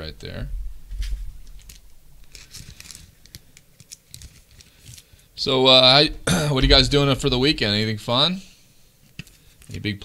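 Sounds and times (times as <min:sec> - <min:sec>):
trading cards clicking and rustling: 0:01.5 - 0:05.1.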